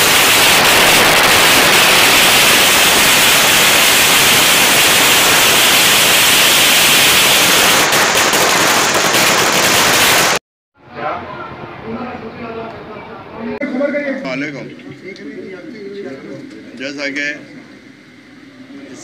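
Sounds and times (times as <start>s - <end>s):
firecrackers crackling: 0.0s - 10.4s.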